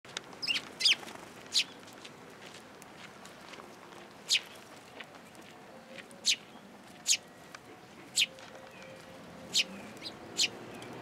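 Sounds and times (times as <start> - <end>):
sparrows chirping: 0.4 - 1.8, 4.2 - 11.0.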